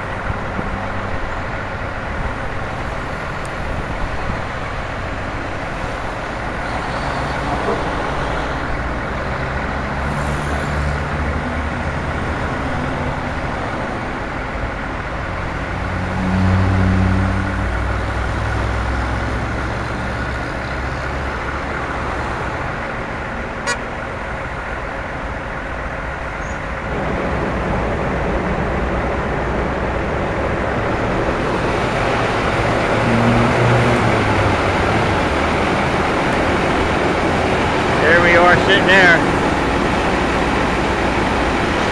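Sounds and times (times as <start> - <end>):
heavy engine low drone: 0.0 - 41.9
idling vehicle engines: 0.0 - 41.9
road rumble: 0.0 - 41.9.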